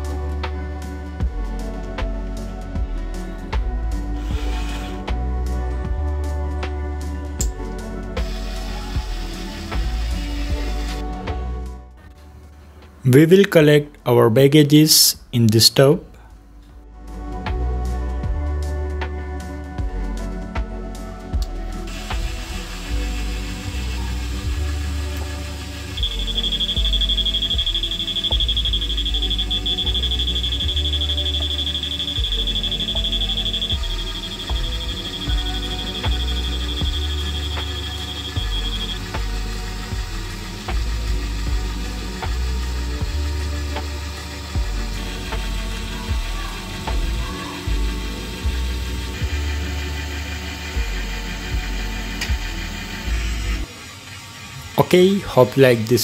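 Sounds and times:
background music with beat: 0.0s - 13.1s, 16.2s - 53.7s
metal detector buzzer tone: 22.2s - 39.2s.

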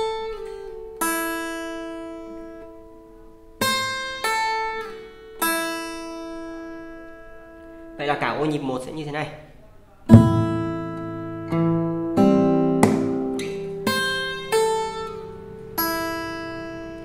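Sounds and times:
acoustic guitar notes: 0.0s - 8.0s, 9.9s - 17.0s.

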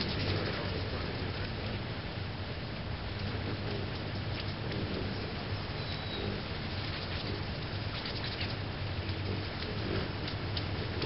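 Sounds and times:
hummingbird wings humming: 0.0s - 11.0s.

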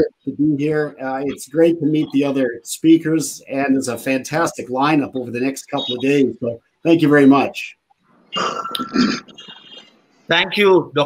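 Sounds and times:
person making throat sound: 8.3s - 9.8s.

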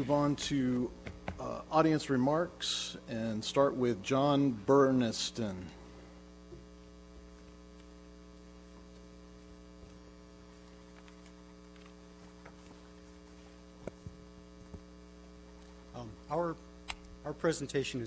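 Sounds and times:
electrical hum: 0.0s - 18.0s.

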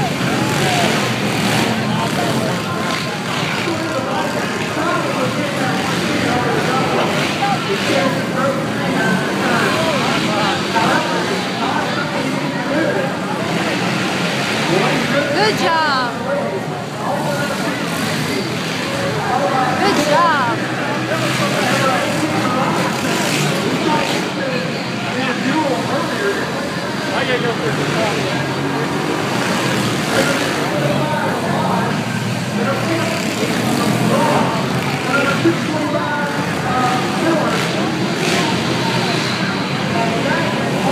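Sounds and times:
crowd chatter: 0.0s - 40.9s
dirt bike engines racing: 0.0s - 40.9s.

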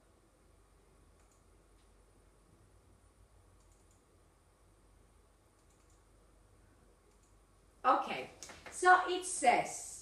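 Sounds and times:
computer mouse clicks: 1.1s - 2.0s, 3.5s - 4.1s, 5.5s - 6.2s, 7.0s - 7.4s.

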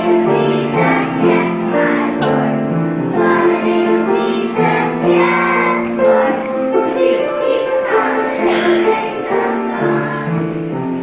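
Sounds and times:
children singing in unison: 0.0s - 10.8s.

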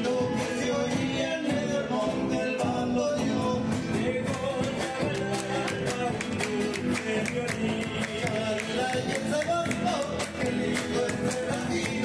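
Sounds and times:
acoustic guitars strumming: 0.0s - 12.0s
electric bass: 0.0s - 12.0s
steady drum beat: 4.0s - 12.0s.

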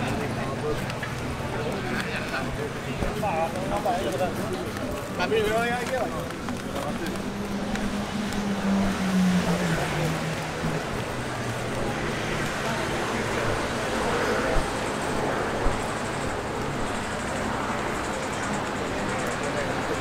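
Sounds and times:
pedestrians' voices: 0.0s - 20.0s
traffic noise: 0.0s - 20.0s
vehicle engine passing: 6.1s - 18.0s.

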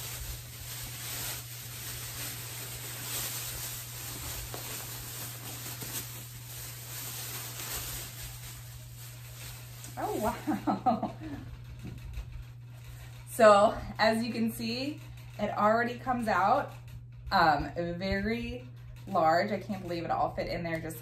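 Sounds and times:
plastic bag crinkling: 0.0s - 13.2s.

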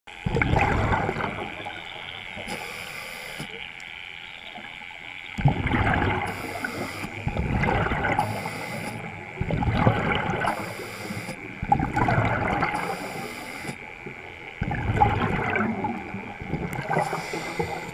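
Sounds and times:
exhaled bubbles rumbling underwater: 0.1s - 17.9s
faint high whine: 0.1s - 17.9s
regulator inhalation hissing: 1.6s - 3.7s, 6.2s - 7.4s, 8.1s - 9.2s, 10.4s - 11.5s, 12.6s - 13.9s, 16.9s - 17.9s.

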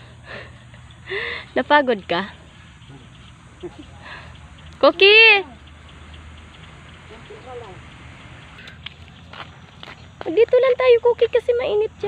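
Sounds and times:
woman calling out: 4.8s - 5.6s
footsteps on concrete: 8.6s - 10.6s.

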